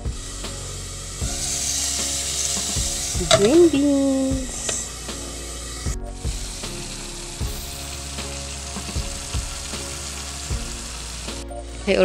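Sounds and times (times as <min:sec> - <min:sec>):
beans sizzling in a wok: 0:00.0 - 0:12.0.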